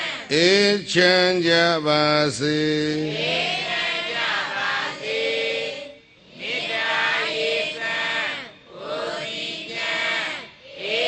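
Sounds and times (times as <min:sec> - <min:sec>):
man chanting into a microphone: 0:00.2 - 0:03.4.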